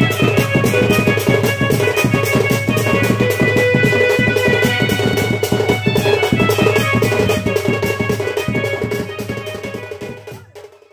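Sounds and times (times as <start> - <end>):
melody instrument held notes: 0.0 - 10.7
hand drum beating: 0.0 - 10.9.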